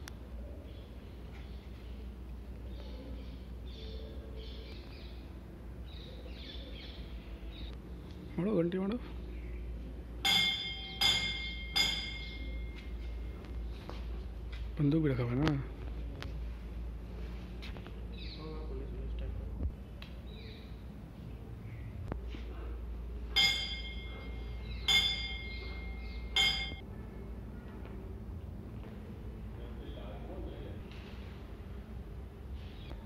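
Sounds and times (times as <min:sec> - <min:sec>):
metal bell ringing: 0:10.2 - 0:12.8, 0:23.3 - 0:26.8.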